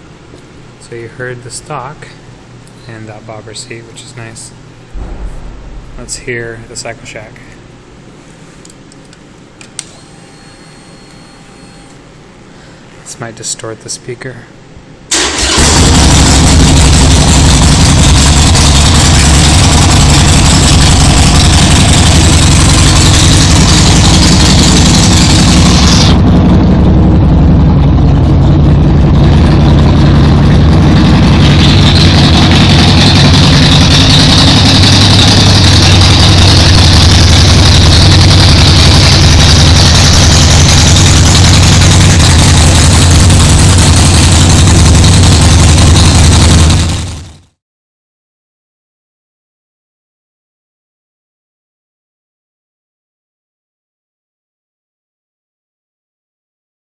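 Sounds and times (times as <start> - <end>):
motorcycle engine idling: 16.2 - 47.3.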